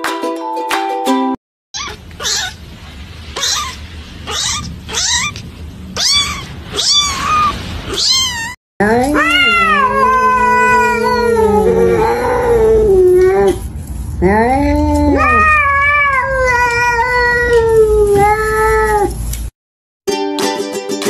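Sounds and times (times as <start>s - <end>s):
cat yowling: 1.8s - 2.6s, 3.4s - 13.6s, 14.7s - 19.2s
kitten mewing: 1.8s - 2.6s, 3.3s - 13.6s, 14.6s - 19.2s.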